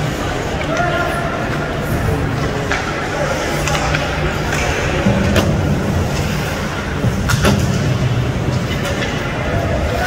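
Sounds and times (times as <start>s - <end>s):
hockey sticks and puck clacking: 0.0s - 10.0s
low rumble of rink: 0.0s - 10.0s.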